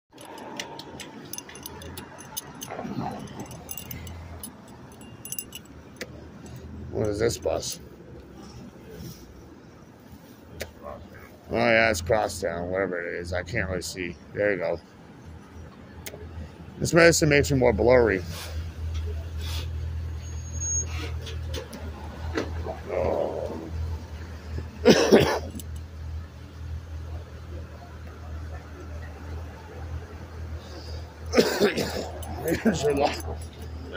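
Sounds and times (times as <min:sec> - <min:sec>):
small clicks and rattles: 0:00.1 - 0:07.1
bus engine rumble: 0:00.1 - 0:33.9
low traffic hum: 0:00.1 - 0:33.9.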